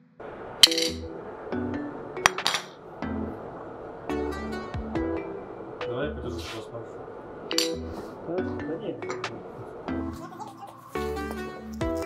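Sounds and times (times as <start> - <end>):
metal disc clinking on tiles: 0.6 - 1.1, 2.2 - 2.8, 7.5 - 8.0.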